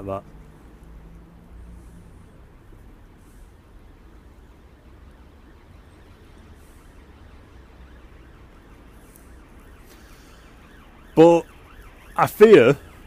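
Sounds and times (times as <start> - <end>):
distant siren wailing: 0.0 - 13.0
low outdoor rumble: 0.0 - 13.0.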